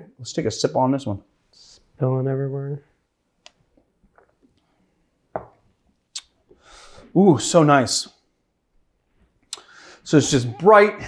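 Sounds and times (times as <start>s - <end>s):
glass set down on wood: 5.3s - 5.7s.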